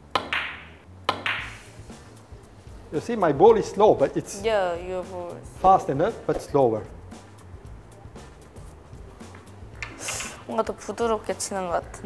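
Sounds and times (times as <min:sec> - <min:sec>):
billiard balls colliding: 0:00.0 - 0:01.8, 0:09.2 - 0:10.5
cue tip striking billiard ball: 0:00.1 - 0:01.7.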